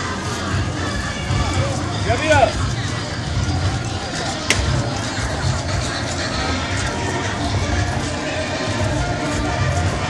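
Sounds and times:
indistinct crowd chatter: 0.0s - 10.0s.

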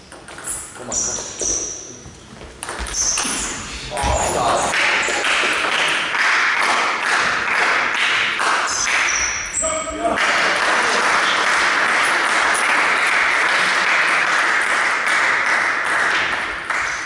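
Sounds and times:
table tennis ball pinging: 2.5s - 3.5s.

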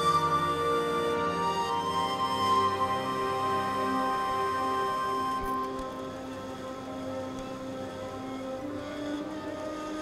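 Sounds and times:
soft sustained background score: 0.0s - 10.0s.

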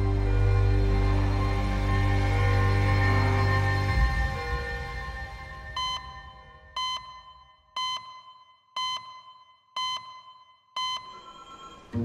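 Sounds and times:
background music: 0.0s - 7.1s
short electronic beeps: 5.8s - 12.0s.

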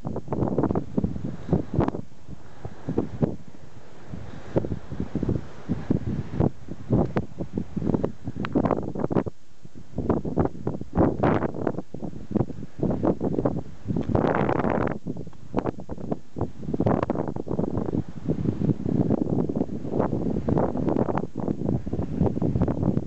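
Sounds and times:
gusty wind buffeting microphone: 0.0s - 23.0s.

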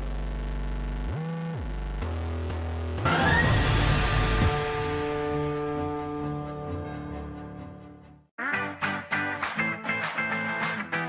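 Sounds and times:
low synthesizer drone: 0.0s - 8.0s.

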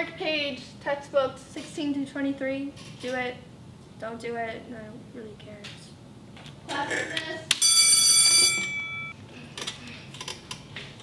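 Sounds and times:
high ringing chime: 7.6s - 9.2s.

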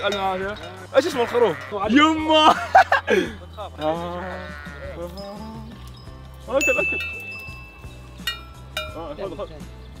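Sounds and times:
sheep bleating: 0.0s - 2.4s, 3.8s - 5.7s.

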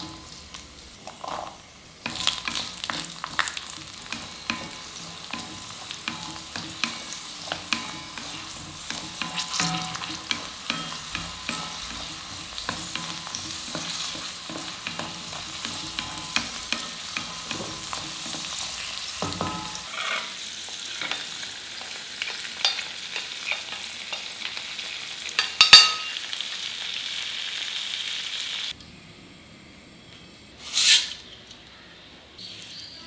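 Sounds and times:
frying sizzle: 0.0s - 28.8s
spatula scraping metal pan: 2.1s - 20.3s.

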